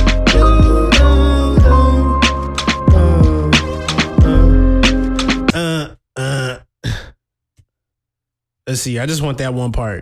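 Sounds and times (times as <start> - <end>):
man making wordless vocal sounds: 0.3 - 4.8, 5.4 - 7.1.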